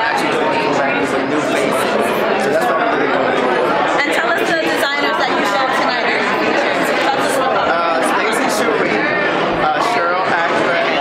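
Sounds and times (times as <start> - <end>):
man talking close to microphone: 0.0 - 3.9, 7.4 - 11.0
chatter of many voices: 0.0 - 11.0.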